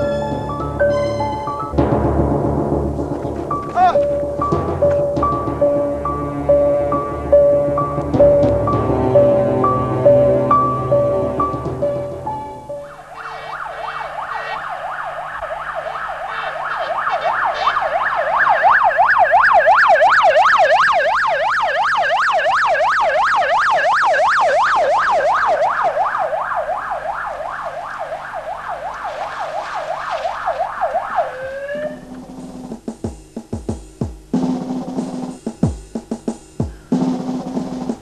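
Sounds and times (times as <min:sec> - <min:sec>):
emergency siren yelping: 0:00.0 - 0:01.8, 0:03.5 - 0:32.4.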